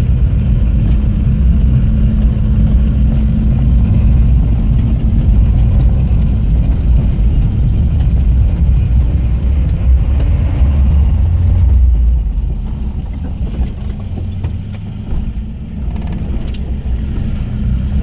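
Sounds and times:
vehicle engine and road rumble: 0.0 - 18.0.

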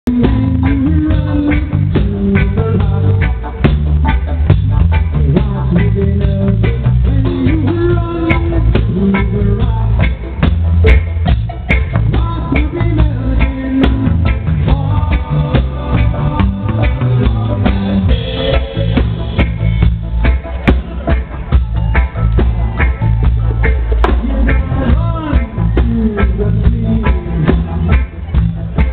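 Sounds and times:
live band playing: 0.0 - 28.9.

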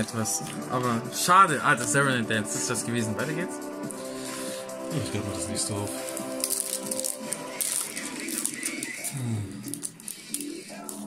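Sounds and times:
background music: 0.0 - 11.0
foil wrapper crinkling and tearing: 5.0 - 11.0.

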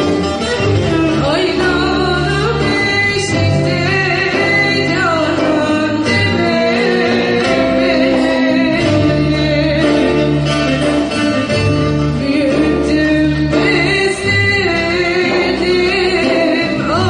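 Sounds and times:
instrumental accompaniment: 0.0 - 17.0
person singing into microphone: 0.6 - 10.9, 11.9 - 17.0.

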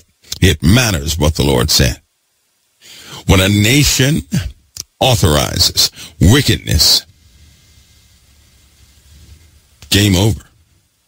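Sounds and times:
faint low hum: 0.0 - 11.0
man speaking: 0.3 - 2.1, 3.2 - 7.1, 9.8 - 10.6.

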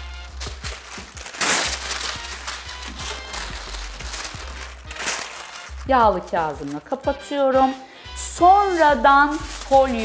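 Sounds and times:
soft background music: 0.0 - 10.0
paper rustling and crinkling: 0.1 - 7.0, 8.6 - 10.0.

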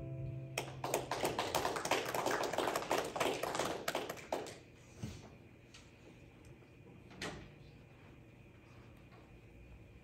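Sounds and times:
acoustic guitar chord: 0.0 - 1.0
crowd clapping: 0.6 - 4.8.

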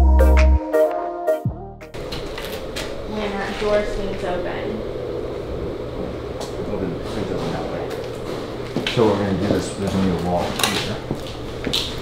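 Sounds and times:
drum fan humming: 1.5 - 12.0.

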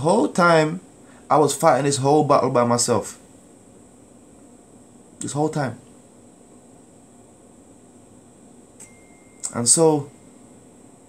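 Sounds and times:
faint steady hiss: 0.0 - 11.0
thin high whine: 0.0 - 11.0.

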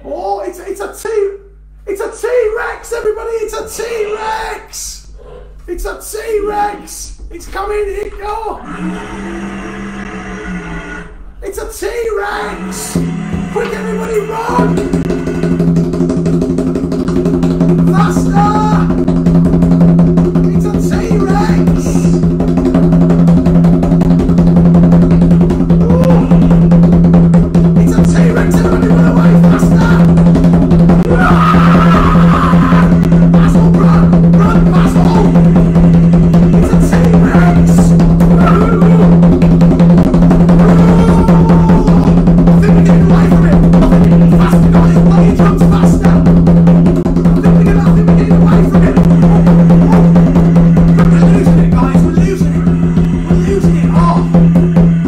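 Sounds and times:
fast hand drum roll: 11.6 - 55.0
steady low tone: 48.1 - 55.0.

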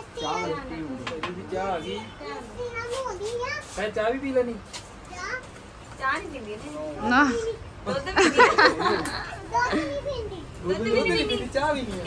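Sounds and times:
young child's voice: 2.4 - 3.8, 5.1 - 5.6, 9.4 - 10.6.

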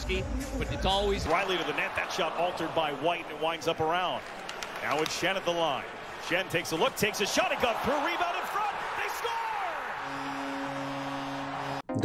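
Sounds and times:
arena crowd noise: 0.0 - 11.9
hockey sticks knocking puck: 4.2 - 5.4
voice: 4.8 - 9.8.

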